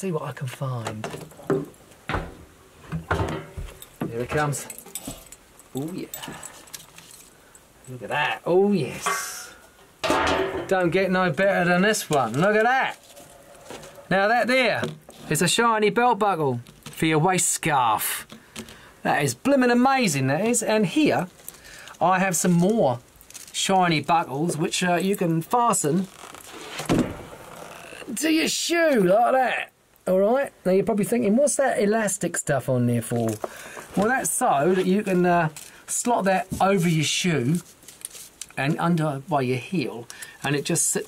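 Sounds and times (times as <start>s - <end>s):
soft handling rustle: 2.7s - 8.1s, 11.3s - 14.2s, 20.3s - 28.0s, 33.0s - 41.0s.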